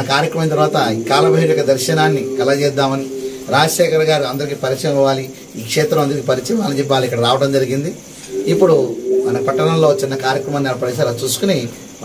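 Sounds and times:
steady low tone: 0:00.3 - 0:05.1, 0:08.3 - 0:11.2
man speaking: 0:00.5 - 0:04.8, 0:08.3 - 0:11.2.

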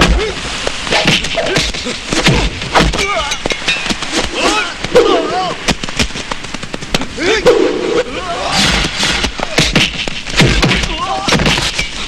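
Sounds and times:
men yelling and grunting: 0:00.0 - 0:05.7, 0:07.1 - 0:09.8, 0:10.5 - 0:11.6
punch impacts: 0:08.6 - 0:11.8.

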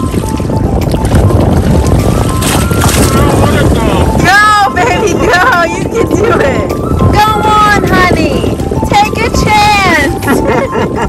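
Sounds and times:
water sloshing against hull: 0:00.0 - 0:11.0
wind buffeting microphone: 0:00.0 - 0:11.0.

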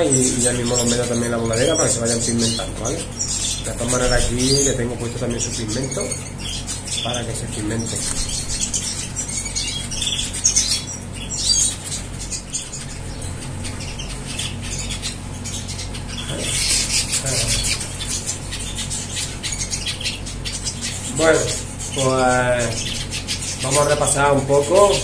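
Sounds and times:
birds chirping: 0:00.0 - 0:25.0
wings fluttering: 0:00.0 - 0:25.0.

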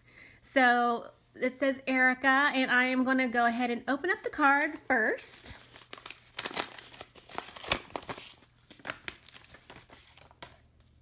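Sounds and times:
paper envelope tearing: 0:05.6 - 0:10.5.

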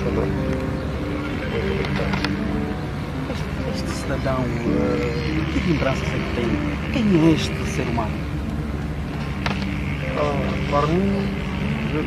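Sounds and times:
low engine hum: 0:00.0 - 0:12.0
street noise: 0:00.0 - 0:12.0.

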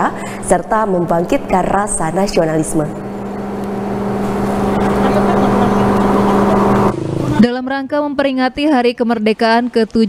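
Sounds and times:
steady low hum: 0:00.0 - 0:07.0.

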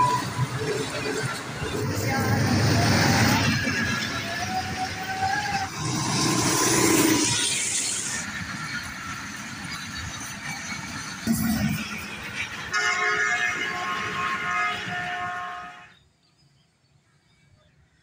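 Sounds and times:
train wheels on rails: 0:00.0 - 0:15.7.

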